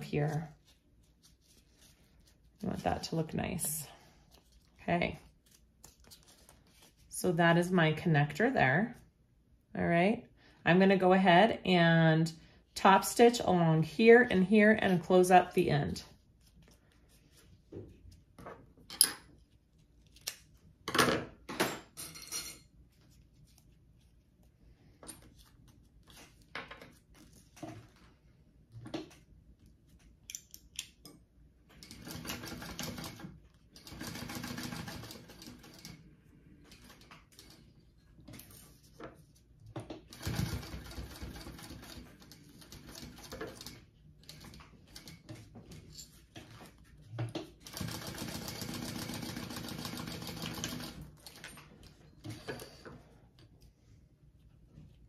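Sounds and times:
sewing machine stitching: 40.1 - 45.4.

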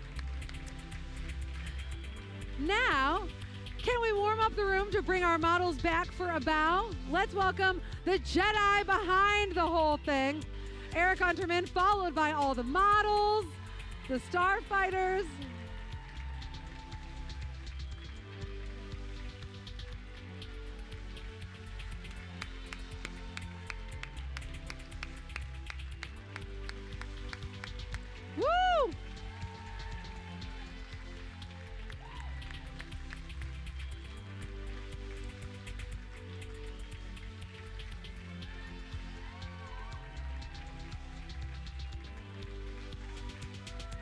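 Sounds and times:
music with steady beat: 0.0 - 44.0
loud whoop: 28.4 - 30.8, 31.9 - 32.7.

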